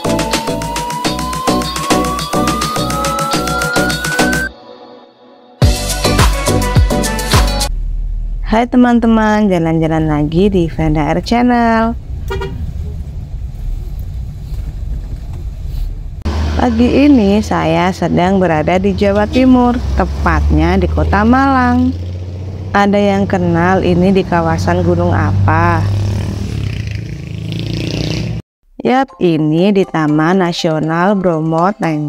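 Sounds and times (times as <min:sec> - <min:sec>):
jeep engine rumbling: 0:07.7 - 0:28.2
car horn toot: 0:12.3 - 0:12.7
motorcycle passing: 0:16.3 - 0:28.4.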